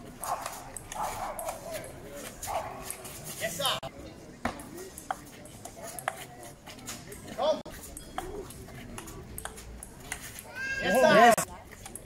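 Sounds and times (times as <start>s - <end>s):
dog-like barks: 0.2s - 1.7s.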